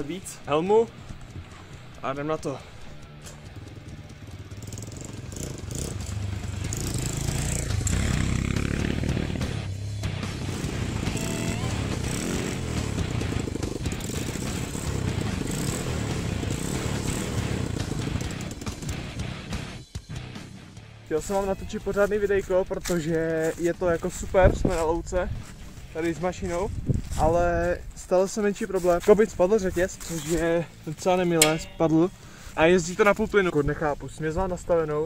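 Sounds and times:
motorcycle engine revving: 0.0s - 21.0s
background music: 0.0s - 35.0s.

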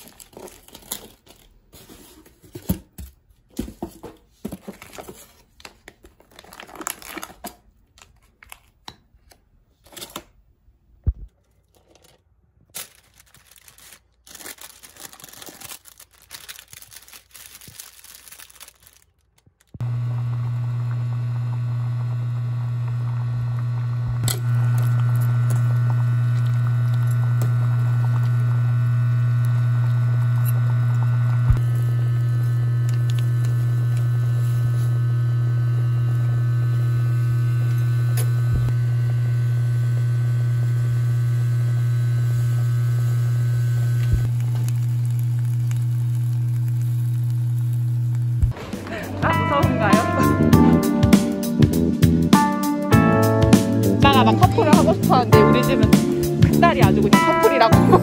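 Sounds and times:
kitchen appliance humming: 19.6s - 51.1s, 53.5s - 58.0s.

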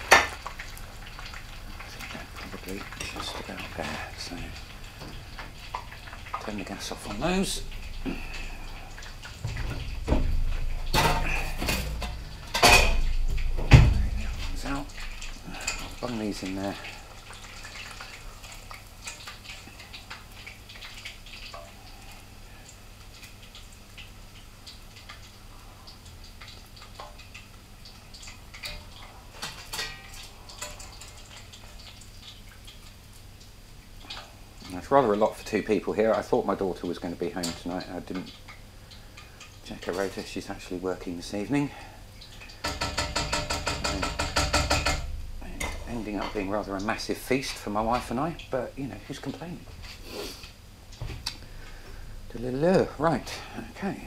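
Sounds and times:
pots and pans clattering: 0.0s - 18.0s, 28.5s - 32.0s, 42.5s - 46.6s
heavy pan knocks and thumps: 9.4s - 14.9s, 42.6s - 46.3s.

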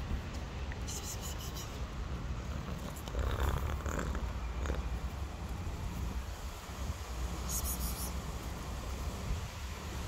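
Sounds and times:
cat purring: 2.4s - 4.9s.

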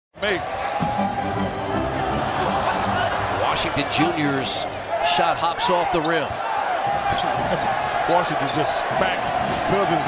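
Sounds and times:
crowd hum: 0.4s - 5.1s.

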